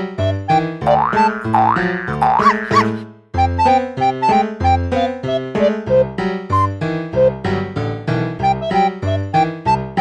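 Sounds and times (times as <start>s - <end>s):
playful keyboard music: 0.0s - 10.0s.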